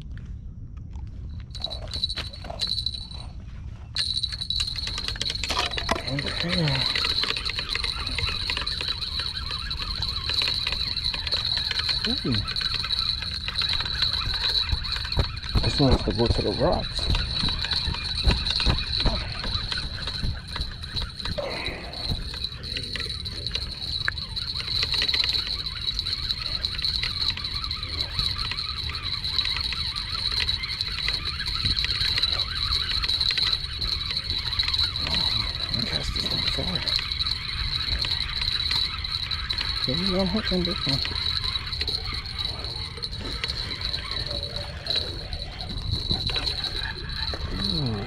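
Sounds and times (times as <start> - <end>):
wind rumbling on microphone: 0.0 - 48.0
high-pitched hum: 1.1 - 48.0.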